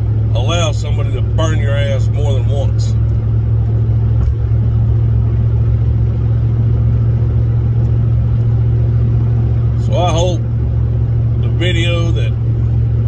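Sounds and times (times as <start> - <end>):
road noise: 0.0 - 13.0
vehicle engine drone: 0.0 - 13.0.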